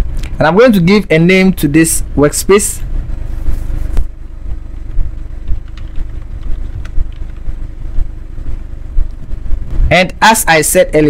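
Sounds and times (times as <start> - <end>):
faint hum: 0.0 - 11.0
low background rumble: 0.0 - 11.0
faint keyboard clicks: 5.6 - 7.5.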